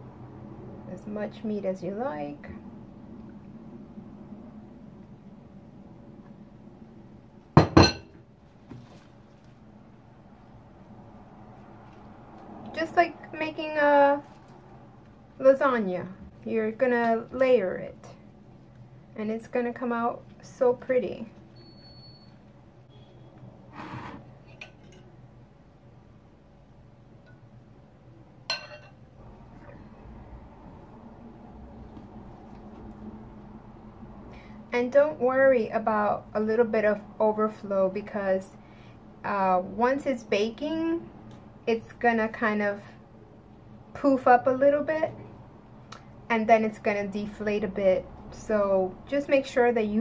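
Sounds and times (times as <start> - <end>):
kitchenware clinking: 7.6 - 8.2, 24.4 - 25.1, 28.5 - 29.0
soft rustle: 8.5 - 9.6.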